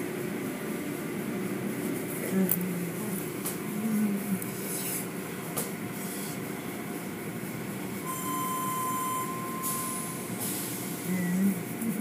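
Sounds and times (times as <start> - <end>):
car wash machinery noise: 0.0 - 12.0
thin high squeal: 8.1 - 10.4.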